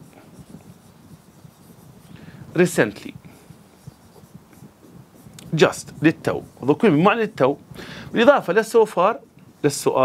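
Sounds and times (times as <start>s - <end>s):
stylus writing on glass: 0.0s - 7.6s
stylus tapping and rubbing: 0.0s - 10.0s.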